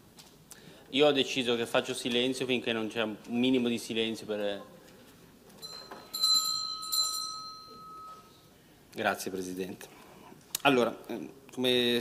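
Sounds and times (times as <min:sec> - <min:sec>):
bell ringing: 0:05.6 - 0:08.4.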